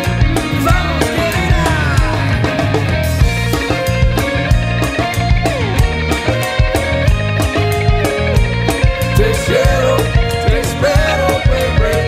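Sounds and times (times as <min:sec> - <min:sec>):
bass: 0:00.0 - 0:12.0
electric guitar lead: 0:00.0 - 0:12.0
steady drum beat: 0:00.0 - 0:12.0.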